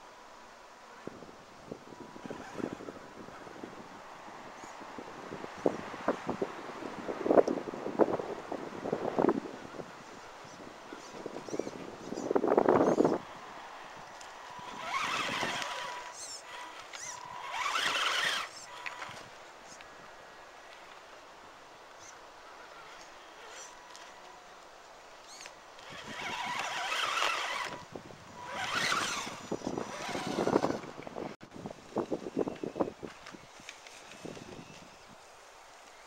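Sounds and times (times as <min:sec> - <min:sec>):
electric motor whine: 0:12.8 - 0:19.3, 0:25.3 - 0:31.0.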